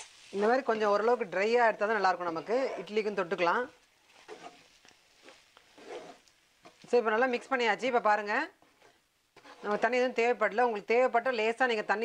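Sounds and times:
spatula scraping frying pan: 0.0 - 7.1, 8.6 - 10.4.

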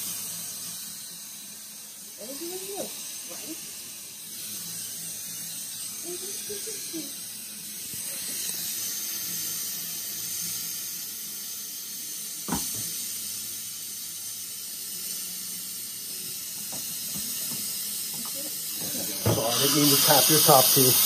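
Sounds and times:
steady hiss: 0.0 - 21.0.

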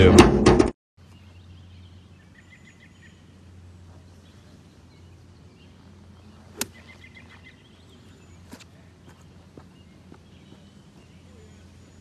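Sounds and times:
faint bird chirps: 1.0 - 12.0
low steady hum: 1.0 - 12.0.

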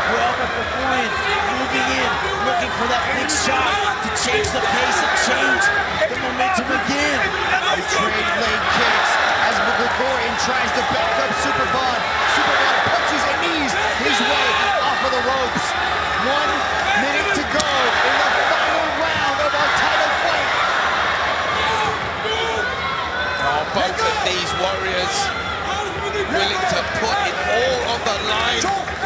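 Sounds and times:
crowd shouting and cheering: 0.0 - 29.0.

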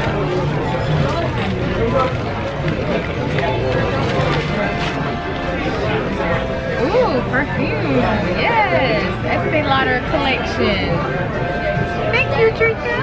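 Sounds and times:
chatter of many voices: 0.0 - 13.0.

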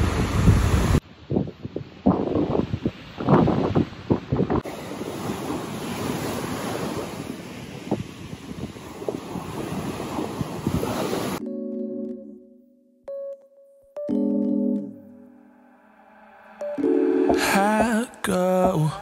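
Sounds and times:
wind buffeting microphone: 0.0 - 11.4
sea waves breaking on shore: 2.8 - 11.4.

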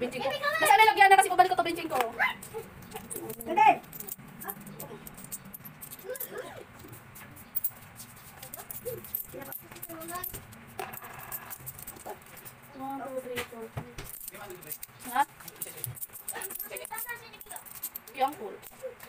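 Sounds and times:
coins clinking: 1.9 - 13.2, 14.0 - 19.0.

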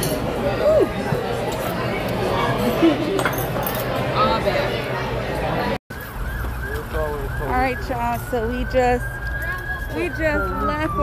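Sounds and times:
siren wailing: 5.9 - 11.0.

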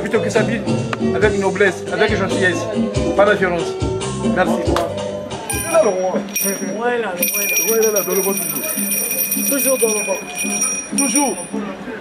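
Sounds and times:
men talking: 0.0 - 12.0
trilling bell ringing: 5.5 - 11.9.

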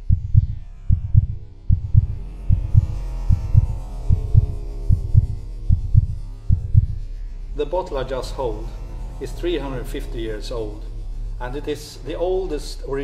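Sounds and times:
faint sustained hum: 0.0 - 13.0
heartbeat-like low thumps: 0.0 - 13.0.

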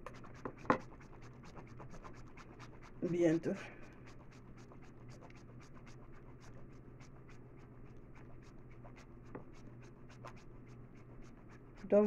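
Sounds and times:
soap grated on metal grater: 0.0 - 12.0.

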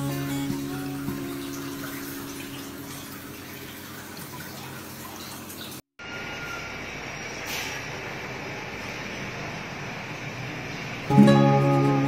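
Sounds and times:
aquarium water and aeration hiss: 0.0 - 12.0.

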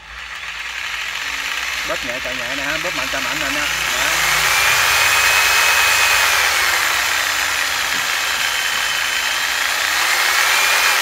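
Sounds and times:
jigsaw running with no load: 0.0 - 11.0.

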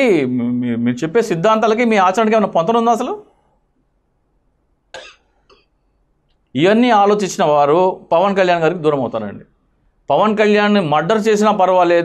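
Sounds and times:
person coughing: 4.9 - 5.7
small throat sound: 4.9 - 5.9.

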